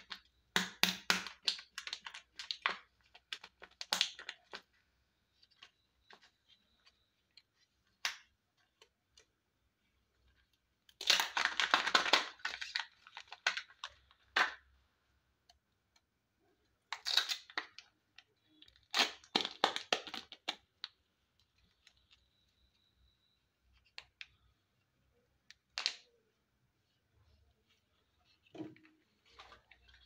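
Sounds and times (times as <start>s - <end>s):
plastic wrapper crinkling and tearing: 10.9s - 14.6s, 16.9s - 17.9s, 18.5s - 21.0s.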